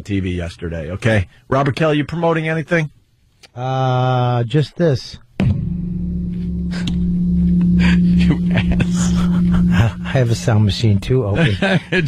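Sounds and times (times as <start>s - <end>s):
boom arm springs ringing hum: 5.4s - 12.0s.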